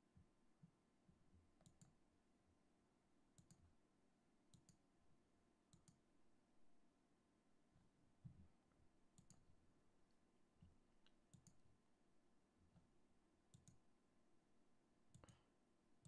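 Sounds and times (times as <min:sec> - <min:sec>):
faint mouse clicks: 0:00.1 - 0:02.0, 0:03.3 - 0:03.7, 0:04.5 - 0:04.8, 0:05.7 - 0:06.0, 0:08.2 - 0:09.5, 0:10.1 - 0:11.6, 0:13.5 - 0:13.9, 0:15.1 - 0:15.6.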